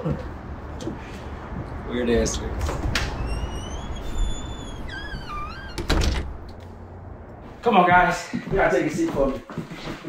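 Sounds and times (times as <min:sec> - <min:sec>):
door closing with heavy thud: 0:02.6 - 0:06.8
door hinges squeaking: 0:02.6 - 0:07.0.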